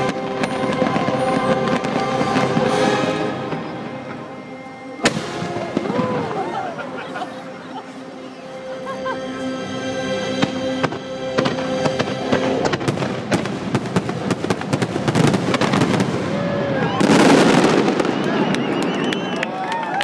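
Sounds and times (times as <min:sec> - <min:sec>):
fireworks bursting and crackling: 0:00.0 - 0:08.7, 0:10.2 - 0:19.7
show music: 0:00.0 - 0:15.2
crowd whooping and cheering: 0:04.3 - 0:10.0, 0:16.2 - 0:20.0.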